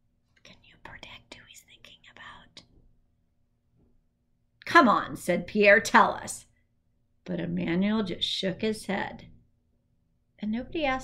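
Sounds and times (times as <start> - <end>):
woman whispering: 0.4 - 2.7.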